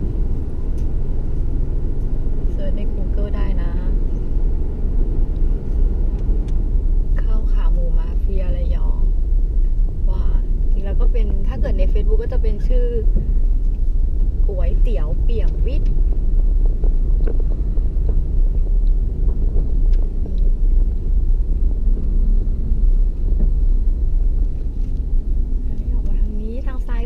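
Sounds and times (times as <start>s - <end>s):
car engine and tyres rumbling: 0.0s - 27.0s.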